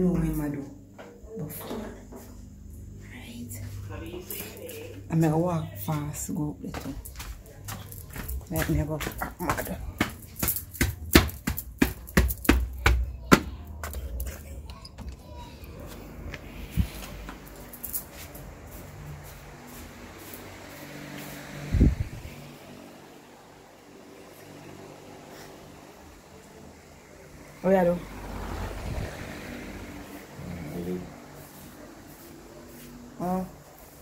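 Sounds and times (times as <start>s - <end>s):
footsteps on hard floor: 5.8s - 14.2s.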